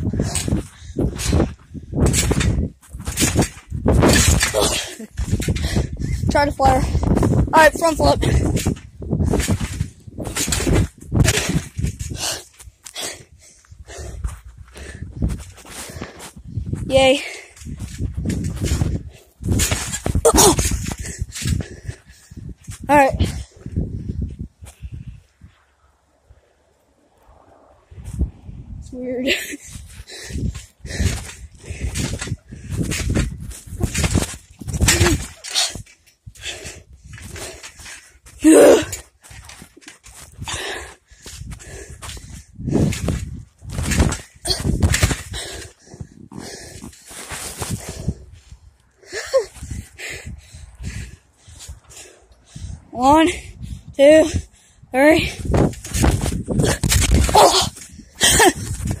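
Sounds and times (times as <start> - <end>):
rustling on microphone: 0.0 - 48.8, 55.2 - 59.0.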